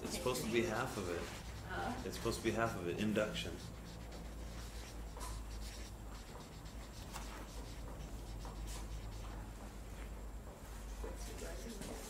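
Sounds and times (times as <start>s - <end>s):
low room hum: 0.0s - 12.0s
marker pen writing on paper: 0.1s - 9.5s, 10.8s - 12.0s.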